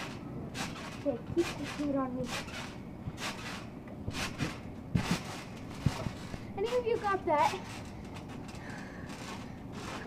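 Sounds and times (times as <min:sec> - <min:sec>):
landings on trampoline mat: 0:00.0 - 0:08.6.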